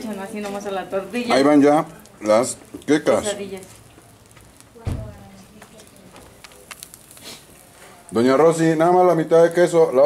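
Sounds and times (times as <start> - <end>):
food crackling and popping: 0.0 - 10.0.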